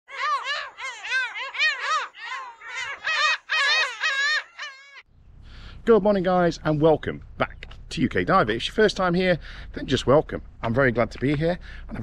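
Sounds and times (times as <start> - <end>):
bird calling: 0.1 - 5.7.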